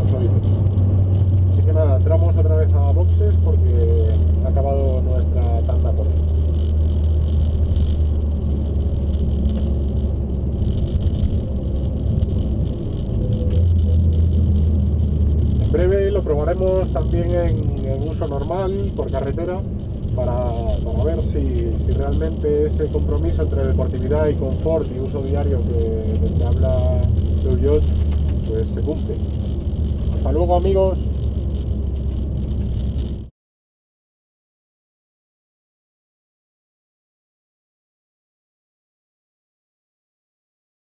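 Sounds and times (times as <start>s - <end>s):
car engine droning: 0.0s - 33.3s
road noise: 0.0s - 33.3s.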